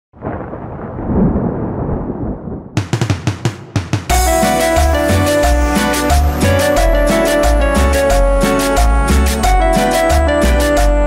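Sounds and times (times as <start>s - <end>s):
drum fill of snare and bass drum: 2.8s - 11.0s.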